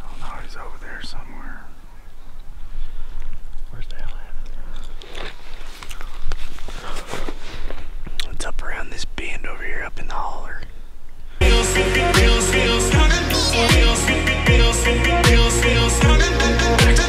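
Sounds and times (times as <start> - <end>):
whispered voices: 3.7 - 4.5
electronic music with steady beat: 11.4 - 17.0.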